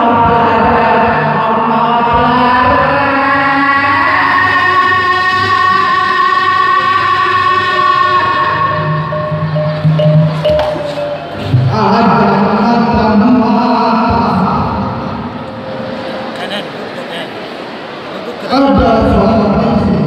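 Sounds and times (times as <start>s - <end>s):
man singing long held note: 0.0s - 15.4s
low instrumental tones: 7.4s - 18.1s.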